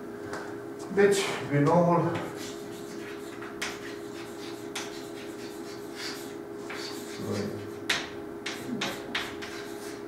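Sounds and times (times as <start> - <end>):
chalk scratching on blackboard: 2.2 - 10.0.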